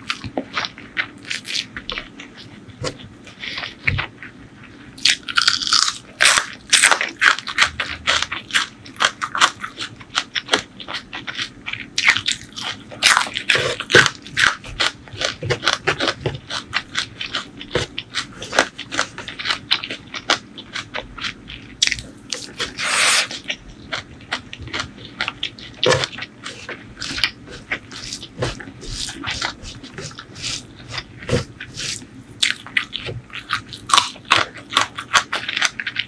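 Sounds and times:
crunchy chewing and biting: 0.0 - 36.0.

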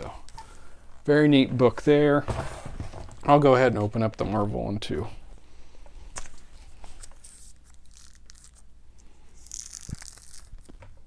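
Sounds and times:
packaging tearing: 7.2 - 8.7, 9.4 - 10.8.

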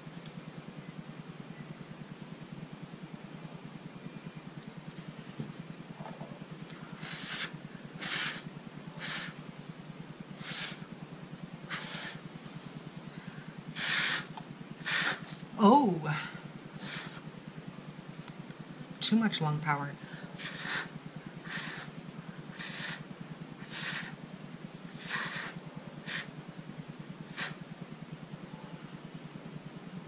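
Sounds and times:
steady low hum: 0.0 - 30.0
person blowing puffs of breath: 6.8 - 9.4, 10.4 - 10.9, 11.7 - 15.3, 16.8 - 17.3, 20.0 - 23.0, 23.6 - 24.2, 24.9 - 26.3, 27.3 - 27.6.

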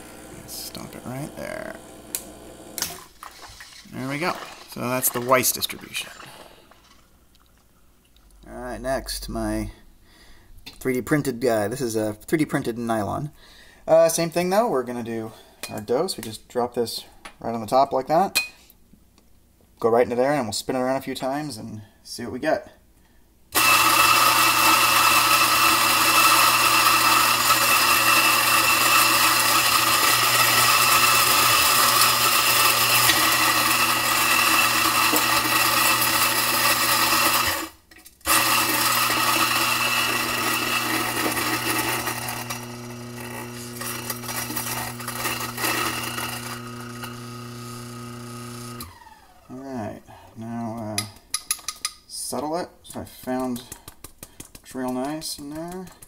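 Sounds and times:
coffee grinder running: 0.0 - 6.3, 23.6 - 49.5.

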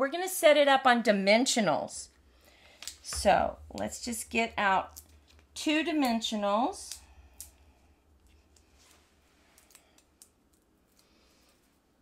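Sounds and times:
rustling of craft supplies: 8.2 - 12.0.

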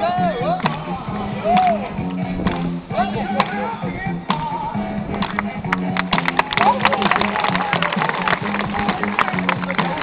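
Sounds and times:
crowd voices: 0.0 - 10.0
street music with low note: 0.0 - 10.0.

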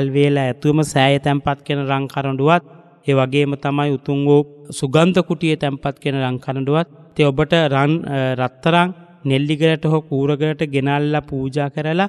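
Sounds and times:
person chanting: 0.0 - 12.0.

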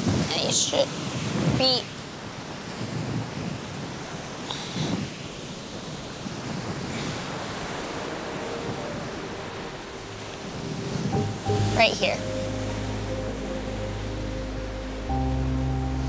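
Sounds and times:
surf: 0.0 - 16.0
wind: 0.0 - 16.0.

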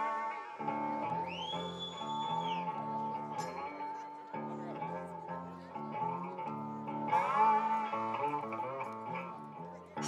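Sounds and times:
electric guitar single notes: 0.0 - 10.0.

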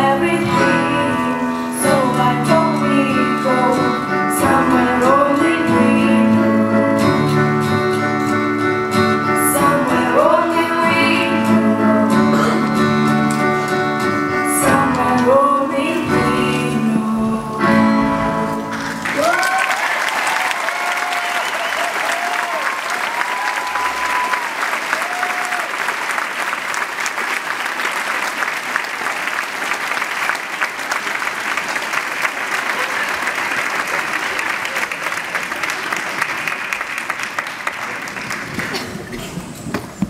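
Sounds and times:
acoustic guitar and voice: 0.0 - 19.2
audience applauding: 18.5 - 40.0
high cheers: 19.0 - 26.9.

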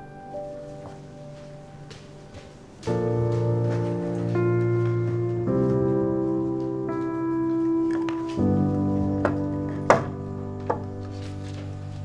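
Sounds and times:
background music chords: 0.0 - 12.0
sharp knocks: 9.2 - 11.0.

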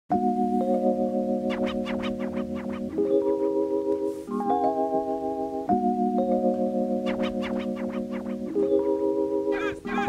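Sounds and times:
held keyboard chords: 0.1 - 10.0.

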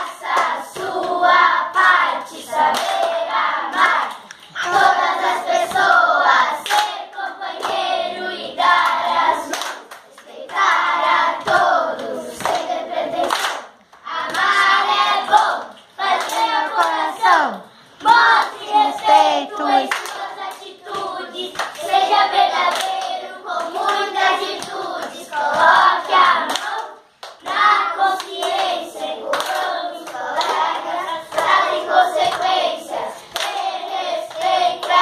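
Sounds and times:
children singing: 0.0 - 35.0
hand clapping: 2.7 - 5.0, 6.6 - 7.0, 8.8 - 17.0, 19.8 - 28.7, 29.3 - 32.6, 33.2 - 33.7.

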